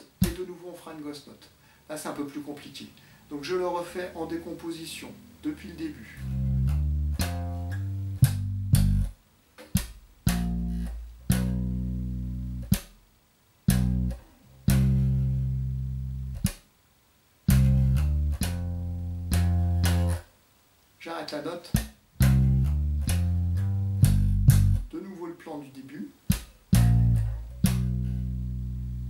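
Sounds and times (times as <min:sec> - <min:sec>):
slap bass guitar: 0:06.0 - 0:13.0, 0:13.6 - 0:16.6, 0:17.5 - 0:20.3, 0:21.7 - 0:24.9, 0:26.3 - 0:29.0.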